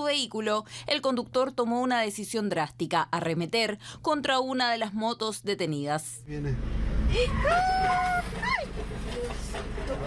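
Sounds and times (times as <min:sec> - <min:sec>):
low engine rumble: 0:06.3 - 0:10.0
person shouting: 0:07.1 - 0:08.6.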